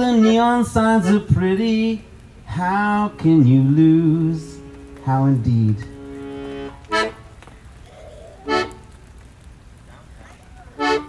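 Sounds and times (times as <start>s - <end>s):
accordion chords: 0.0s - 7.7s, 8.4s - 9.2s, 10.8s - 11.0s.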